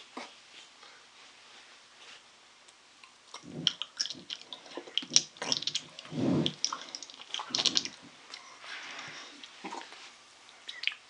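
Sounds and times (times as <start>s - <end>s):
wet mouth eating sounds: 3.3s - 11.0s.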